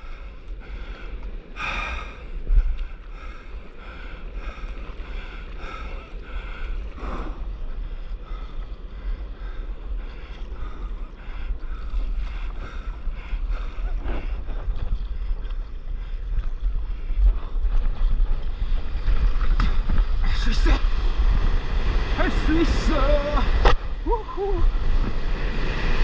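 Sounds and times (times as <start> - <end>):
surf and moving water: 0.0 - 26.0
wind buffeting microphone: 0.0 - 26.0.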